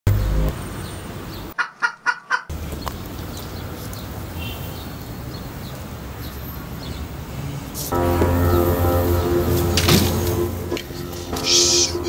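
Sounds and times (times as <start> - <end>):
loud low rumble: 0.1 - 0.6, 7.9 - 12.0
faint street noise: 0.1 - 12.0
chicken clucks: 1.6 - 2.5.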